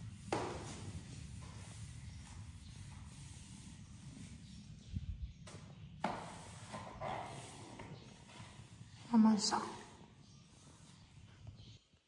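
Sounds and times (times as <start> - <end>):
broom brushing ceiling: 0.0 - 11.7.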